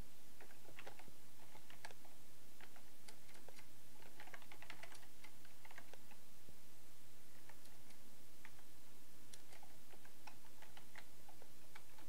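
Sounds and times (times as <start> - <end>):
typing on computer keyboard: 0.4 - 6.2, 9.3 - 12.0.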